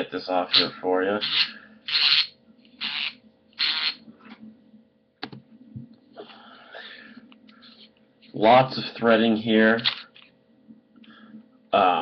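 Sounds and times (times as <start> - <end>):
faint rubbing and handling: 7.2 - 8.6.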